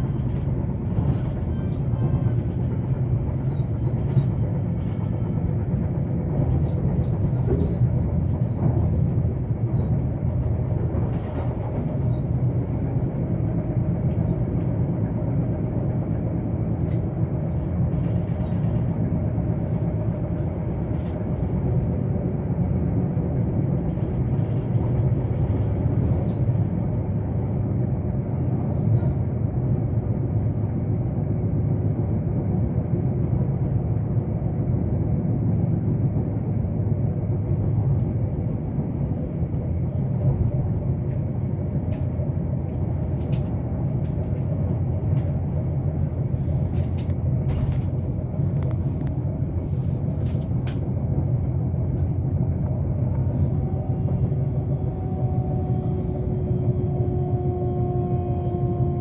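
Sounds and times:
train rumbling on track: 0:00.0 - 0:59.0.

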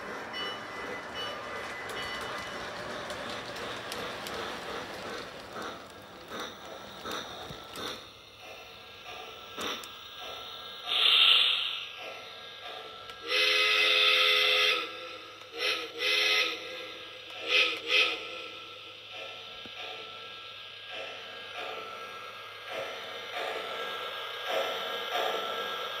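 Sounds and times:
soft locomotive running sounds: 0:00.0 - 0:26.0
steam hiss: 0:00.0 - 0:26.0
model train steam whistle: 0:13.2 - 0:18.7.

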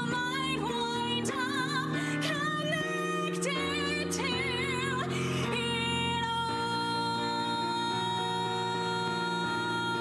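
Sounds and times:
keyboard chords: 0:00.0 - 0:10.0.

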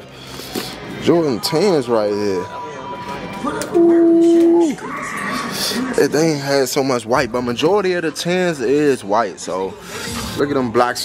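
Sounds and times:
person humming a note: 0:03.8 - 0:04.7.

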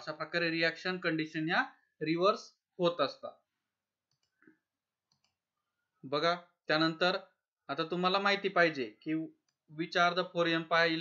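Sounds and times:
computer mouse clicking: 0:04.0 - 0:05.4.

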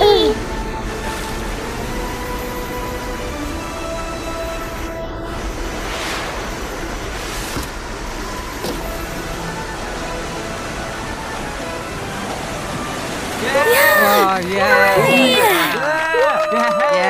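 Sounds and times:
background music: 0:00.0 - 0:06.1, 0:08.2 - 0:15.8
cartoon ocean wave rushing: 0:05.7 - 0:07.5, 0:12.7 - 0:15.8
brief swooshes: 0:05.7 - 0:07.6.

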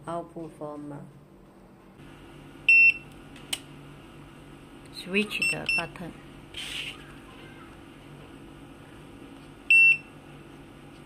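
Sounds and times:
card reader buzzer beep: 0:02.7 - 0:03.1, 0:05.4 - 0:05.9, 0:09.7 - 0:10.1.

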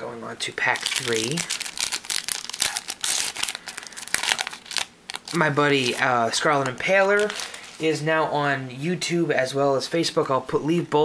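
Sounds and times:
foil wrapper tearing and crinkling: 0:00.6 - 0:06.0, 0:07.0 - 0:07.8.

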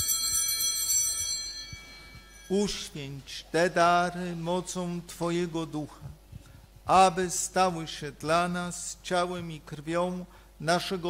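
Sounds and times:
small bells jingling: 0:00.0 - 0:03.2.

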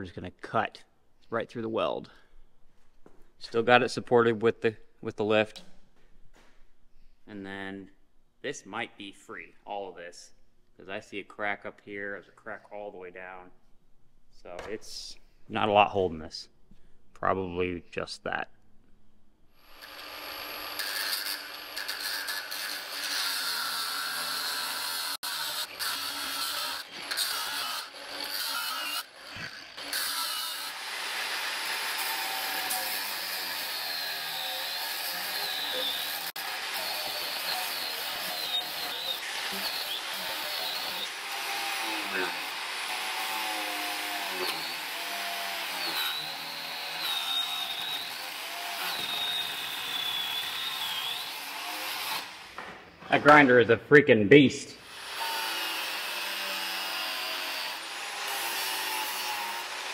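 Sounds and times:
angle grinder cutting steel: 0:19.6 - 0:52.6, 0:54.8 - 0:59.9.

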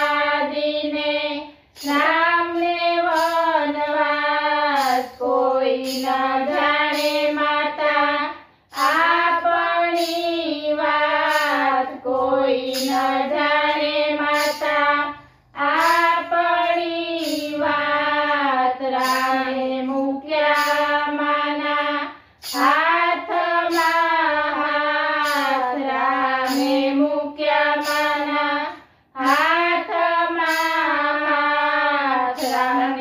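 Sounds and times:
women singing in unison: 0:00.0 - 0:33.0.

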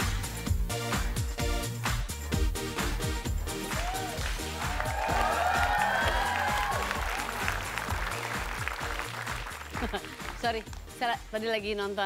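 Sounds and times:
upbeat theme music: 0:00.0 - 0:12.0
audience applauding: 0:03.6 - 0:10.8.

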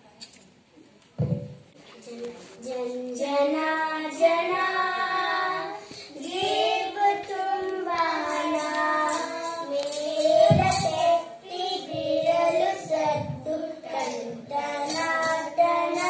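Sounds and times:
children singing into microphones: 0:02.0 - 0:16.0
low thumps: 0:11.8 - 0:13.6.

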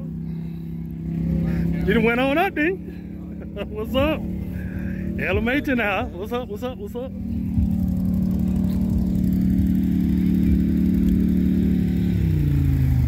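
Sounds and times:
four-wheeler engine running: 0:00.0 - 0:13.0.

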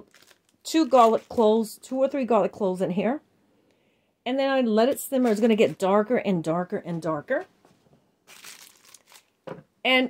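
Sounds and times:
plastic bag crinkling: 0:00.0 - 0:02.1, 0:08.2 - 0:09.5.

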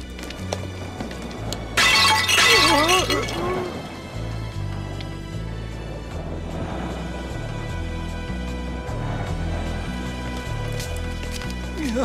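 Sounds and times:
loud crash: 0:01.8 - 0:03.6.

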